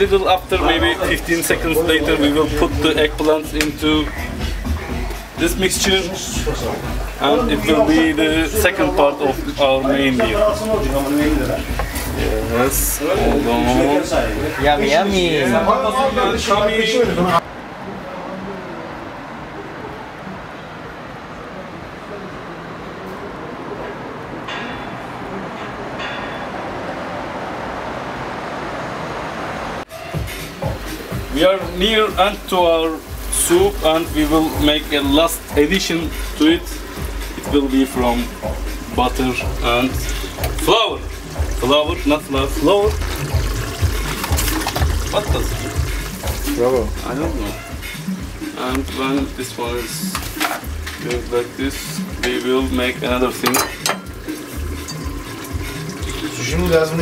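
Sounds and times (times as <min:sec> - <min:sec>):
city street traffic hum: 0:00.0 - 0:57.0
steady even noise: 0:17.2 - 0:41.8
soup sloshing in a pot: 0:53.5 - 0:56.4.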